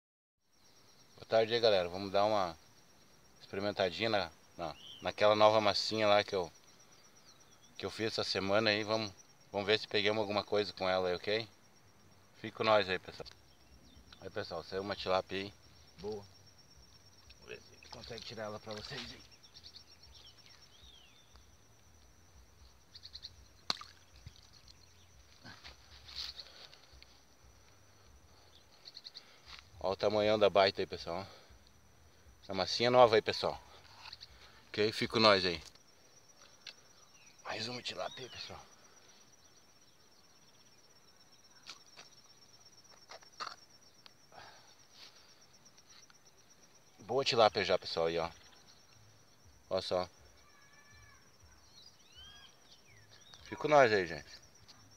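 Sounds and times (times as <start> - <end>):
high-pitched insect trill: 0.5 - 54.9
thin steady high tone: 0.6 - 41.6.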